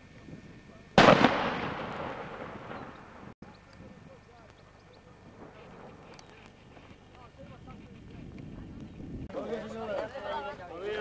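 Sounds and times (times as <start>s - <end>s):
echo rolling across valley: 1.0s - 3.4s
loud explosive bang: 1.0s - 3.4s.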